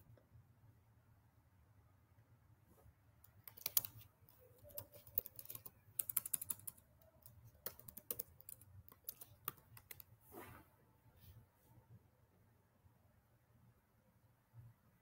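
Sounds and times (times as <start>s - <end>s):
computer keyboard typing: 3.2s - 10.1s.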